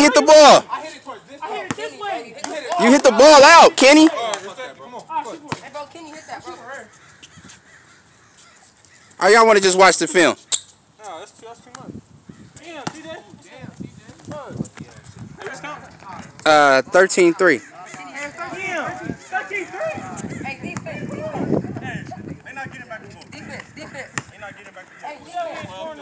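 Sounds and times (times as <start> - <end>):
men talking at a distance: 0.0 - 7.5, 8.4 - 26.0
players' voices: 0.0 - 26.0.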